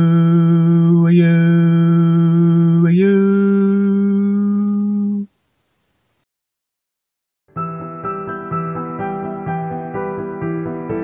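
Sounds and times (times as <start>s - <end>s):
man singing chant-like song: 0.0s - 5.3s.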